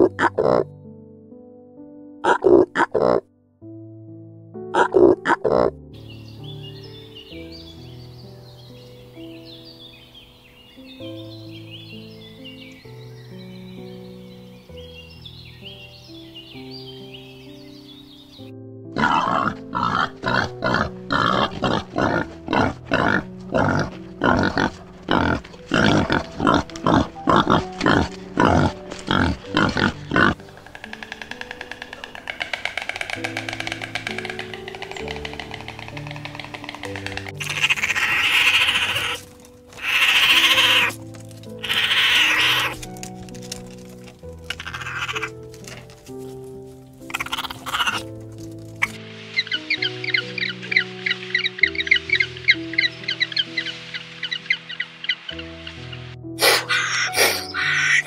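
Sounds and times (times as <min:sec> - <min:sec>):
loud animal cries: 0:00.0 - 0:00.7, 0:19.0 - 0:42.9, 0:44.5 - 0:45.4, 0:47.0 - 0:48.2, 0:48.8 - 0:58.0
pigs grunting: 0:00.0 - 0:00.7, 0:02.2 - 0:03.2, 0:04.7 - 0:05.8, 0:19.0 - 0:42.9, 0:44.4 - 0:45.9, 0:47.0 - 0:49.0, 0:56.4 - 0:58.0
soft piano music: 0:00.0 - 0:58.0.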